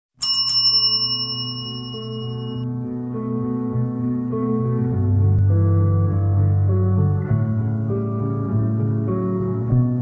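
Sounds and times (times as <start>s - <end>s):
high bell chime: 0.2s - 2.6s.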